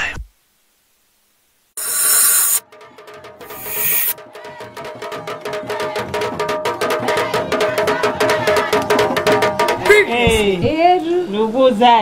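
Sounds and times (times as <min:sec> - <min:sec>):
held tone: 0:01.8 - 0:04.2
short percussive hits: 0:01.8 - 0:10.4.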